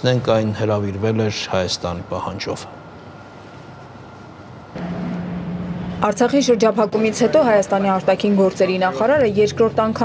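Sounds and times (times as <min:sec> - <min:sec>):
passing traffic hum: 0:04.7 - 0:10.0.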